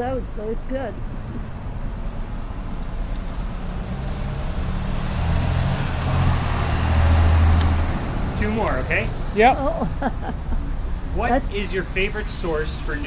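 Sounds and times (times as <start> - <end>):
vehicle engine rumble passing: 0.0 - 13.0.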